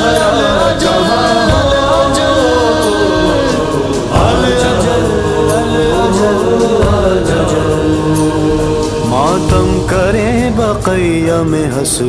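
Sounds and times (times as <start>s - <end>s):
choral voices droning: 0.0s - 12.0s
soft percussive beat: 0.0s - 12.0s.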